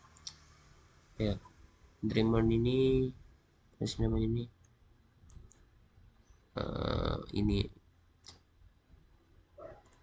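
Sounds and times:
computer mouse clicks: 0:04.6 - 0:05.7, 0:08.2 - 0:08.5.

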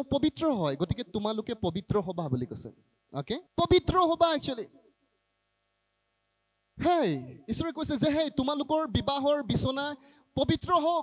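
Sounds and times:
man's amplified voice speaking: 0:00.0 - 0:04.8, 0:06.8 - 0:11.0
faint electrical hum: 0:00.0 - 0:11.0.

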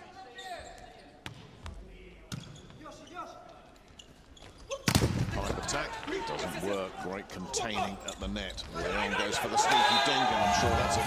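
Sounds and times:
volleyball bouncing on court floor: 0:04.8 - 0:05.6.

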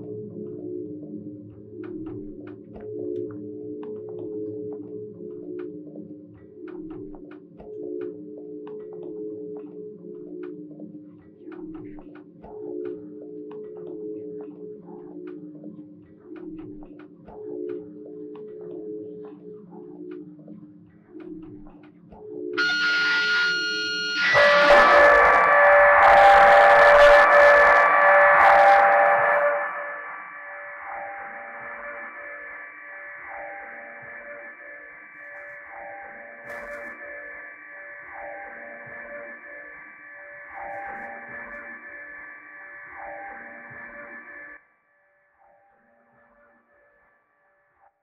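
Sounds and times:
wall of distorted noise: 0:22.6 - 0:44.5
high steady tones: 0:22.6 - 0:44.6
low electronic drone: 0:22.6 - 0:44.6.

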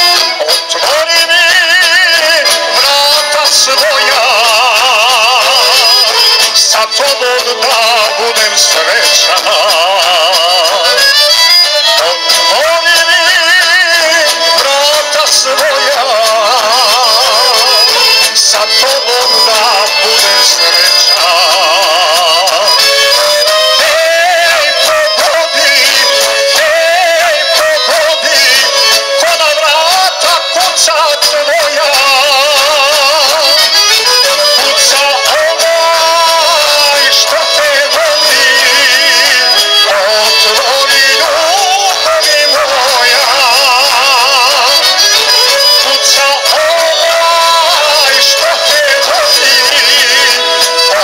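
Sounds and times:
folk band with violins and drums: 0:00.0 - 0:51.0.

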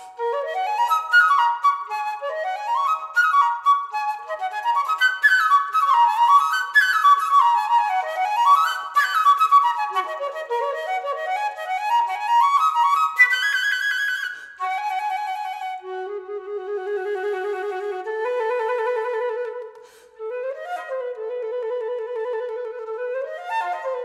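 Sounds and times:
solo flute playing: 0:00.0 - 0:24.0.

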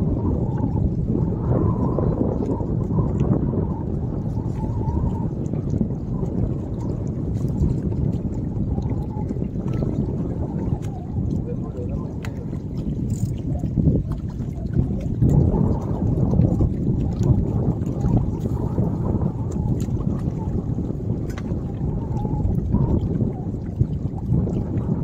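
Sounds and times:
wind rumbling on microphone: 0:00.0 - 0:25.0.

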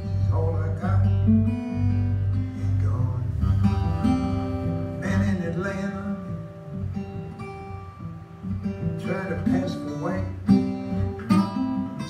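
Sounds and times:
person singing: 0:00.0 - 0:06.6, 0:09.0 - 0:12.0
plucked acoustic guitar: 0:00.0 - 0:12.0.

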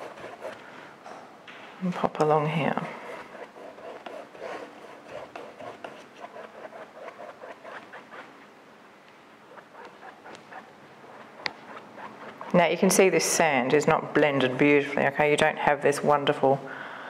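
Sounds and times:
paintbrush scrubbing on canvas: 0:00.0 - 0:00.7, 0:02.5 - 0:08.4, 0:09.5 - 0:13.4.

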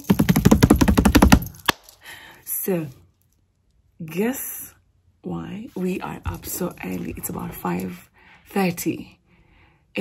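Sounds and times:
hands drumming on a surface: 0:00.0 - 0:01.6.

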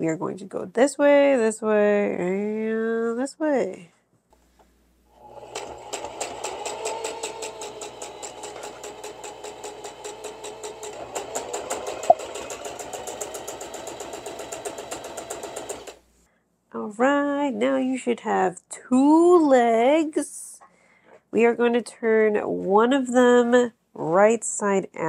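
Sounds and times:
sewing machine stitching: 0:05.2 - 0:16.0.

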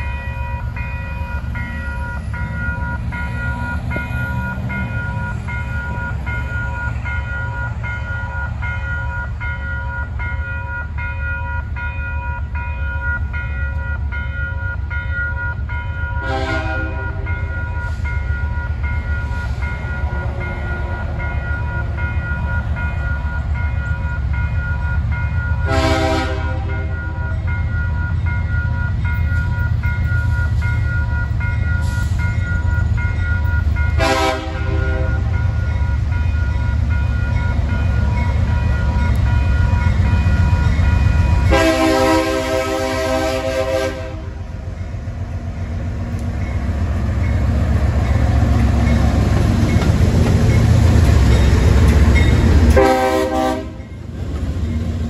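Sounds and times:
locomotive engine rumbling: 0:00.0 - 0:55.0
railroad crossing bell ringing: 0:00.0 - 0:55.0
locomotive air horn blasts: 0:16.2 - 0:17.3, 0:25.6 - 0:27.0, 0:34.0 - 0:35.3, 0:41.4 - 0:44.4, 0:52.8 - 0:53.8.

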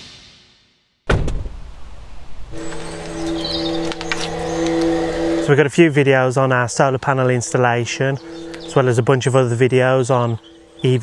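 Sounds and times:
steady hum of sustained tones: 0:02.2 - 0:11.0
bird chirp: 0:02.6 - 0:05.5, 0:06.4 - 0:11.0.

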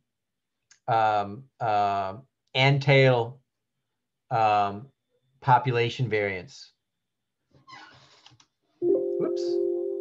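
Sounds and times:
computer alert chime: 0:08.8 - 0:10.0.

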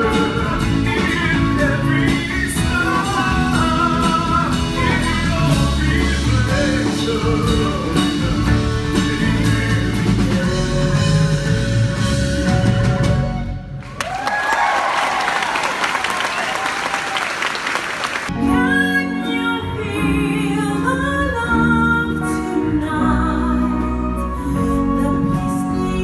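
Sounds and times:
man singing into a microphone: 0:00.0 - 0:13.5
amplified band playing: 0:00.0 - 0:13.9.

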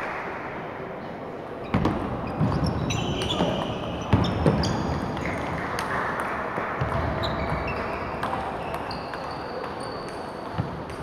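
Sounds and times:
table tennis balls clicking: 0:05.2 - 0:11.0.

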